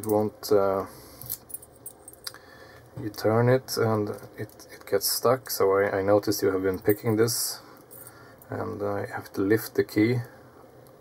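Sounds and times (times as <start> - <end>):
keys clinking on a ring: 1.1 - 2.3, 6.7 - 7.2, 7.8 - 8.2.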